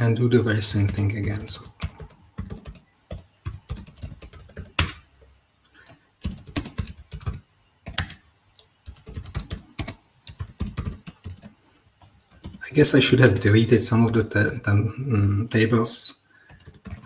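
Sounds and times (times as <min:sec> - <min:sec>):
computer keyboard typing: 0:00.7 - 0:05.0, 0:05.8 - 0:12.6, 0:16.5 - 0:17.0.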